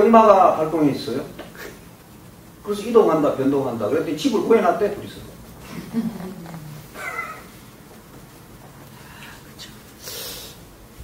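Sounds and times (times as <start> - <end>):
soft laughter: 5.6 - 7.6.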